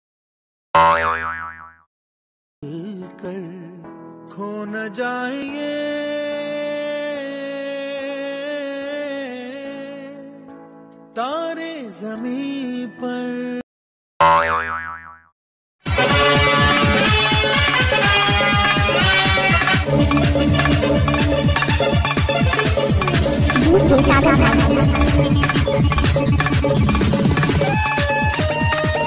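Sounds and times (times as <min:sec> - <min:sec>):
cartoon boing: 0:00.8 - 0:01.9, 0:14.2 - 0:15.3, 0:23.2 - 0:26.3
electronic dance music: 0:19.8 - 0:28.6.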